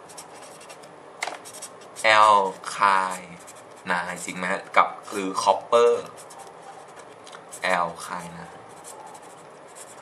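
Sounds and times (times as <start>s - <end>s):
marker writing on paper: 0.0s - 0.8s, 1.4s - 4.4s, 5.0s - 10.0s
person speaking: 1.5s - 9.4s.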